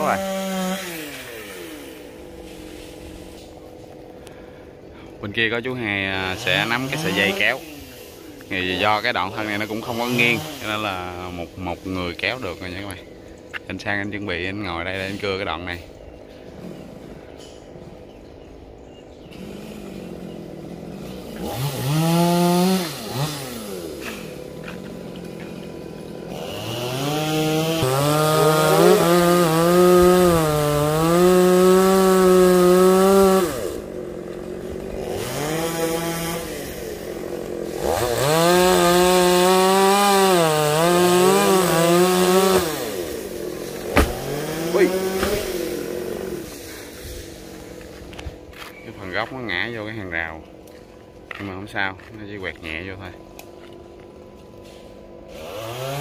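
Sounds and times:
chainsaw cutting wood: 0:00.0 - 0:04.3, 0:06.0 - 0:12.7, 0:19.3 - 0:48.7, 0:54.6 - 0:56.0
sharp knocks: 0:43.9 - 0:44.4, 0:45.1 - 0:45.5.

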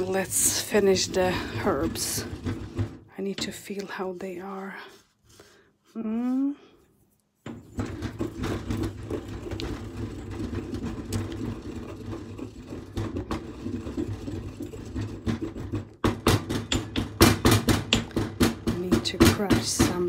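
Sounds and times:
pestle grinding in stone mortar: 0:00.0 - 0:05.6, 0:07.4 - 0:20.0.

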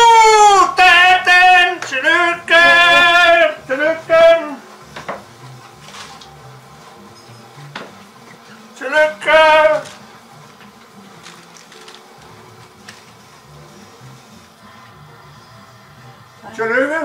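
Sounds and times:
man cheering with loud shouts: 0:00.0 - 0:04.6.

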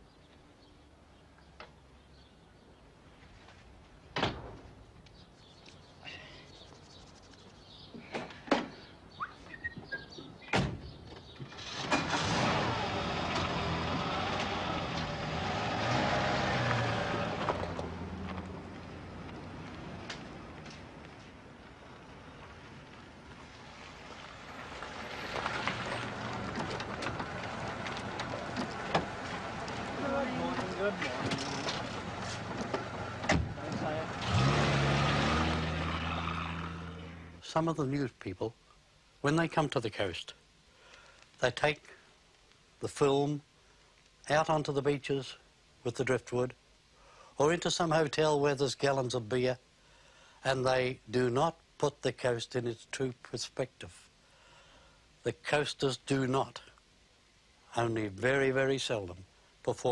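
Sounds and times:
car engine starting and pulling away: 0:10.8 - 0:37.5
car door slamming: 0:30.6 - 0:33.8.

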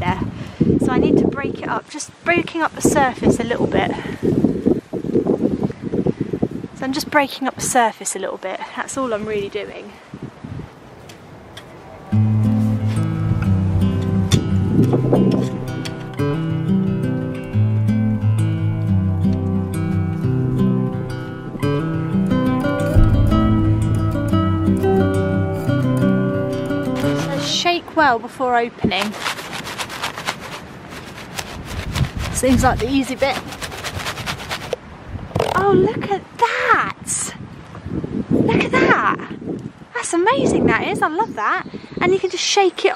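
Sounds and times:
strummed acoustic guitar: 0:12.1 - 0:27.5
low rumble: 0:22.2 - 0:26.6
gloved hand scratching soil: 0:26.9 - 0:27.7, 0:28.8 - 0:34.8
seeds rattling in cardboard box: 0:29.0 - 0:34.8.

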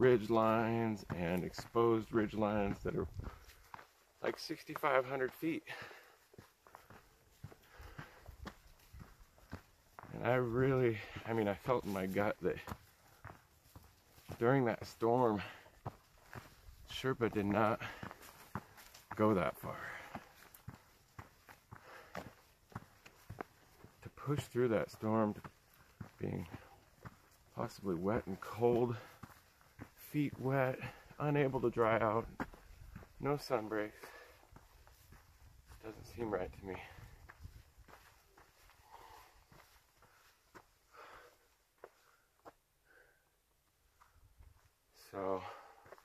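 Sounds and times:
footsteps on trail: 0:00.0 - 0:46.0
soft breath: 0:05.7 - 0:09.2, 0:38.5 - 0:43.4.

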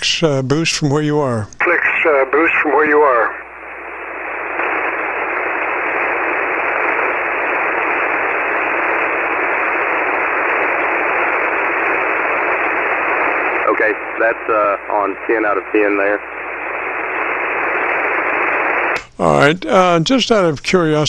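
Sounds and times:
radio receiver hiss: 0:00.0 - 0:21.0.

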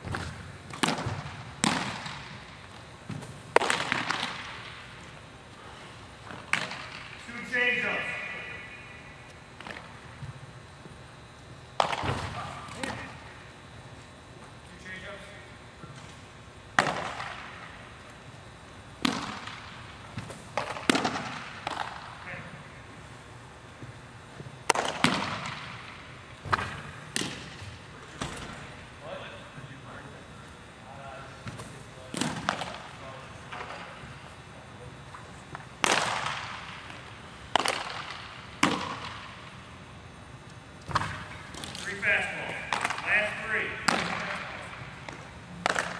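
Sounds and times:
baseballs smacking into mitts: 0:00.1 - 0:02.5, 0:03.1 - 0:04.9, 0:06.2 - 0:07.2, 0:09.6 - 0:10.2, 0:11.8 - 0:13.2, 0:16.8 - 0:17.8, 0:19.0 - 0:22.2, 0:24.6 - 0:28.7, 0:31.4 - 0:32.9, 0:35.5 - 0:39.6, 0:40.8 - 0:45.9
baseball smacking into mitt: 0:03.1 - 0:04.8, 0:11.8 - 0:13.0, 0:24.7 - 0:27.6, 0:35.5 - 0:39.4, 0:43.8 - 0:45.9.

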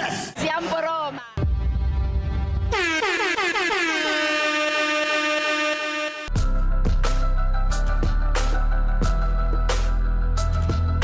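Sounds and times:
air horn blast with dropping pitch: 0:02.7 - 0:06.3.

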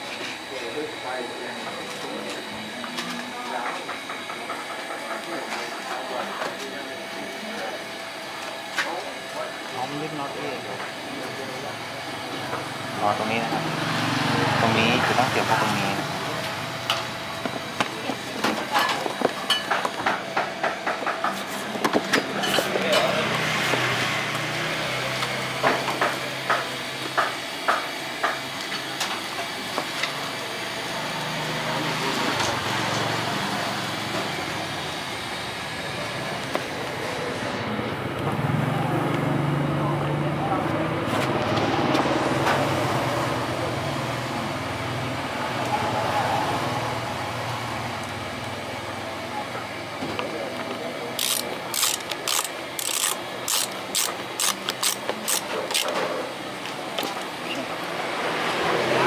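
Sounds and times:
steady noisy background: 0:00.0 - 0:59.0
ratchet wrench clicking: 0:51.2 - 0:55.9.

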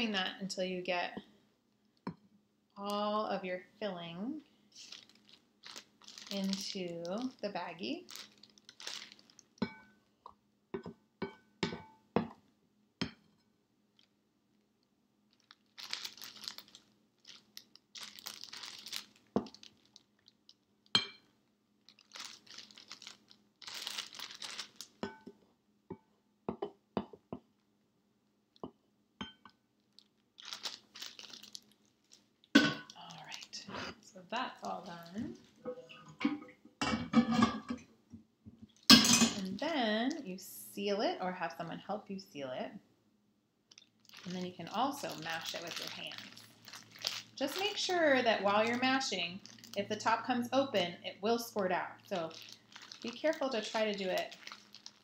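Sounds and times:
plastic bag crinkling: 0:04.8 - 0:09.6, 0:15.3 - 0:20.6, 0:21.8 - 0:25.0, 0:29.8 - 0:35.6, 0:38.7 - 0:40.2, 0:43.7 - 0:55.0.

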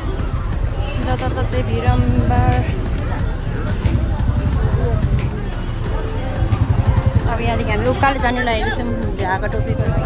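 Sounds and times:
traffic noise: 0:00.0 - 0:10.0
heavy uneven low rumble: 0:01.2 - 0:10.0.

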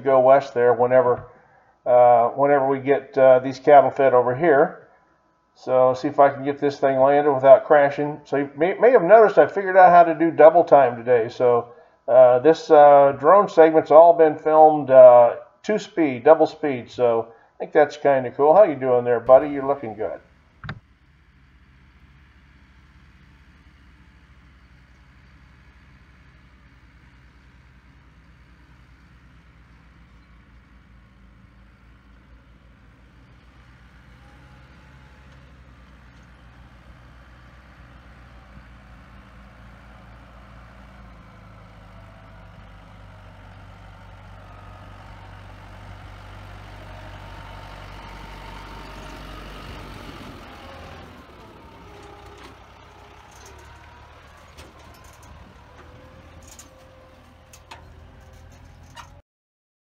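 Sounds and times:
tractor engine running: 0:00.0 - 0:04.7, 0:16.7 - 0:59.2.

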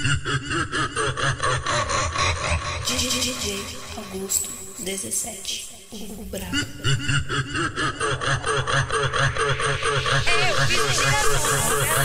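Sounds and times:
stuttering laugh sample: 0:00.0 - 0:03.0, 0:06.5 - 0:12.0.

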